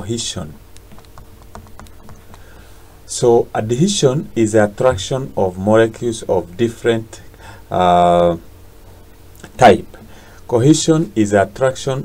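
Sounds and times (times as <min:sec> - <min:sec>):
faint steady hum: 0:00.0 - 0:12.0
stylus tapping on tablet: 0:00.7 - 0:02.5.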